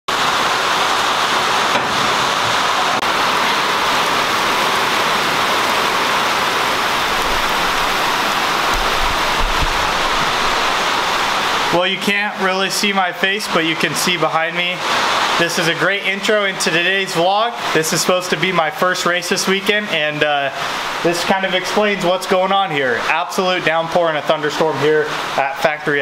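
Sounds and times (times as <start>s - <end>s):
heavy rain on steel container: 0.1s - 26.0s.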